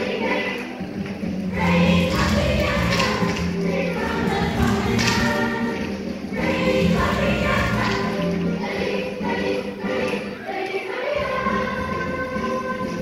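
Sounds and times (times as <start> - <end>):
children singing: 0.0 - 13.0.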